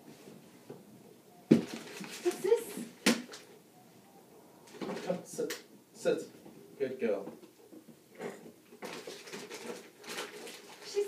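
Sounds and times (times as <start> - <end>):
rustling of wrapped presents: 0.0 - 3.6, 4.7 - 5.4, 7.4 - 11.0.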